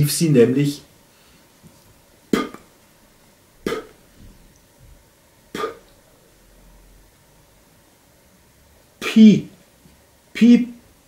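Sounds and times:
man making clipped vocal sounds: 0:02.4 - 0:02.6, 0:05.6 - 0:05.9, 0:09.0 - 0:09.5, 0:10.4 - 0:10.8.

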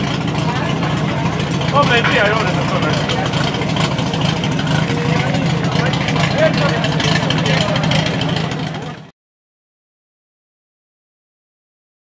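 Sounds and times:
pump engine running: 0:00.0 - 0:09.1.

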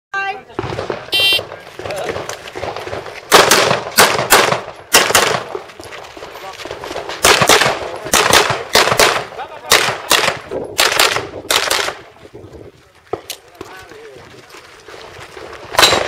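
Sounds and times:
pistol shots: 0:00.6 - 0:05.7, 0:06.7 - 0:12.0, 0:15.7 - 0:16.0.

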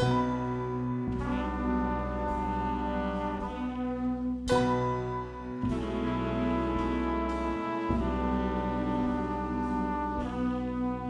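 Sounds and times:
bass: 0:00.0 - 0:11.0
horn section sustained chords: 0:00.0 - 0:11.0.

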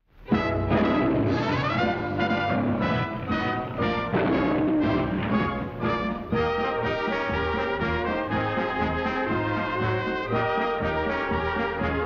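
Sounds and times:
orchestral brass chords: 0:00.2 - 0:12.0.

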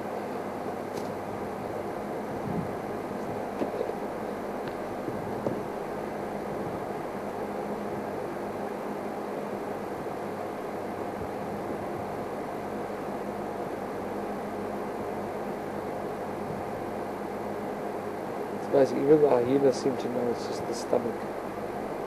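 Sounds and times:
low engine-like hum with hiss: 0:00.0 - 0:22.0.

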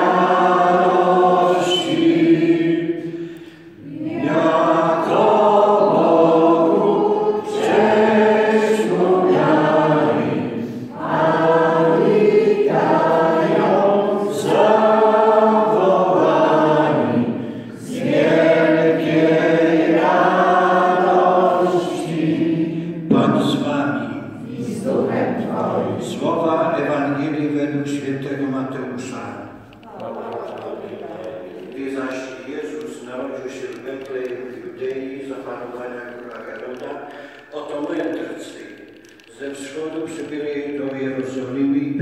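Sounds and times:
group singing unaccompanied: 0:00.0 - 0:29.0, 0:29.8 - 0:36.2.

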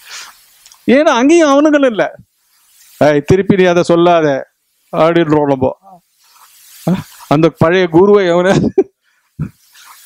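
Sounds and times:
man speaking: 0:00.8 - 0:02.2, 0:03.0 - 0:05.9, 0:06.9 - 0:08.8.

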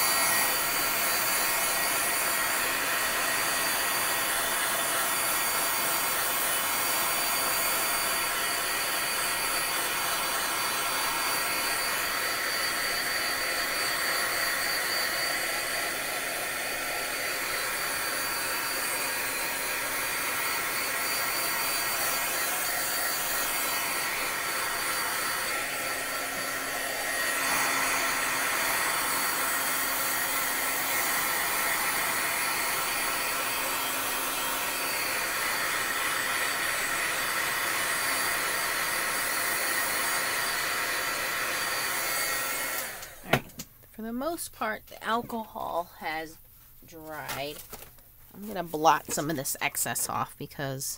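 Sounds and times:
heat tool blowing: 0:00.0 - 0:43.5.

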